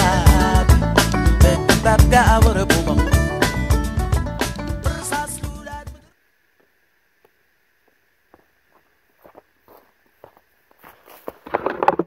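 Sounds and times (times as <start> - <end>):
footsteps on rocky ground: 7.8 - 12.0.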